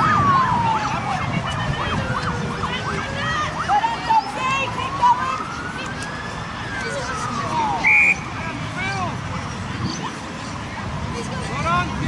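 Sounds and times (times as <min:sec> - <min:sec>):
emergency siren yelping: 0:00.0 - 0:08.4
wailing siren tone: 0:00.0 - 0:08.4.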